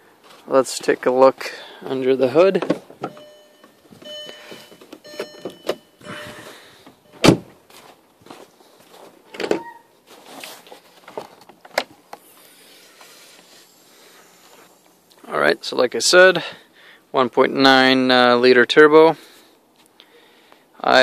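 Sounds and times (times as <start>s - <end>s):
car door-ajar warning chime: 3.0s - 7.5s.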